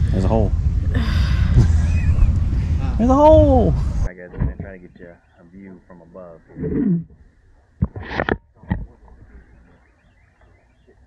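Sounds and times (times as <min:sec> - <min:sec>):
faint outdoor background: 0:00.0 - 0:11.0
microphone rustling: 0:03.8 - 0:04.8, 0:06.5 - 0:09.4.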